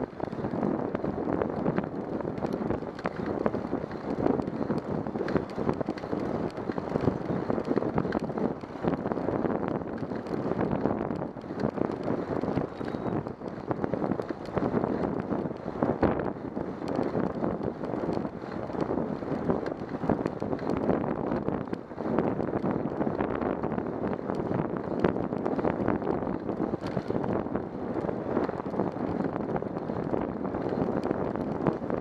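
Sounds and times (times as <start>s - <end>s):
small rattling clicks: 0.0s - 32.0s
wind buffeting microphone: 0.0s - 32.0s.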